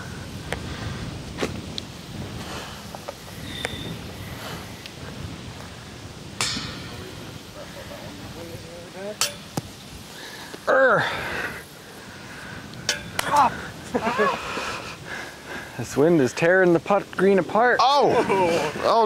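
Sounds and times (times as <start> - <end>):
wind buffeting microphone: 0.0 - 19.0
sharp ringing knocks: 6.4 - 7.3, 9.2 - 9.6, 12.9 - 13.3
person exclaiming: 10.7 - 11.2, 13.2 - 14.4, 17.8 - 18.8.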